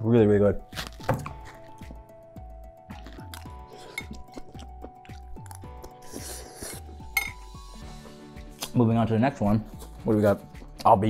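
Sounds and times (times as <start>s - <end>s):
soft background music: 0.0s - 11.0s
dishes and utensils clinking: 7.2s - 7.4s.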